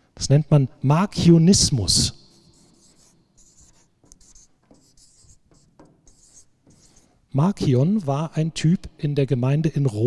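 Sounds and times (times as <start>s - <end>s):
marker pen scratching on paper: 2.0s - 7.3s.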